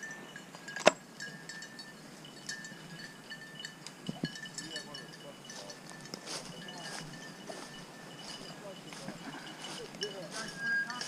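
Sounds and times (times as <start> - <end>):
light metallic clinking: 0.0 - 11.0
faint indistinct voices: 4.2 - 11.0.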